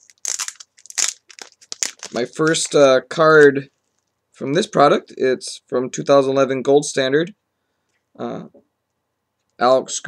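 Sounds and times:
packaging crinkling and tearing: 0.0 - 2.8.

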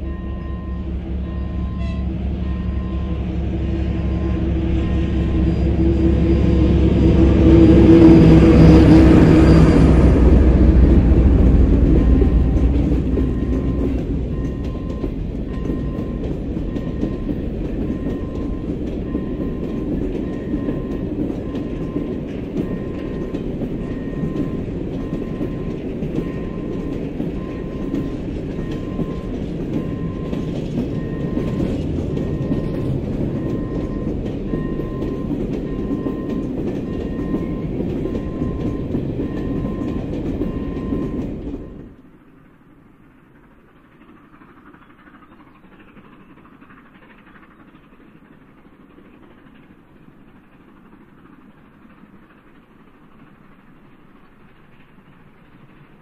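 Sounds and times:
faint high pulsing tone: 0.0 - 41.8
freight wagons rolling on rails: 0.0 - 56.0.

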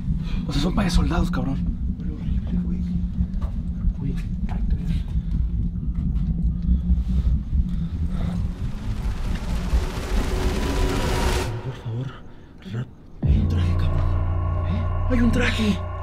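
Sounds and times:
low rumble: 0.0 - 16.0
hissing noise: 7.8 - 12.6.

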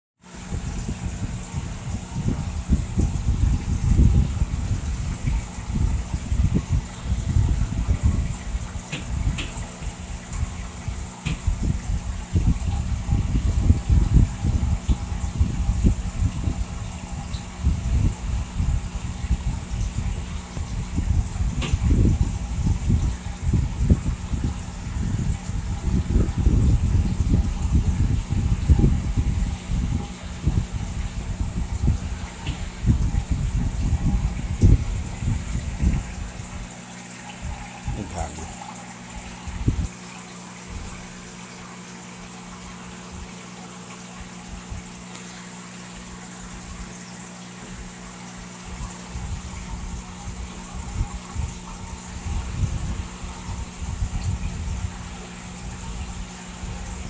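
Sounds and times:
low pump hum: 0.2 - 57.0
water gurgling and bubbling: 0.2 - 57.0.

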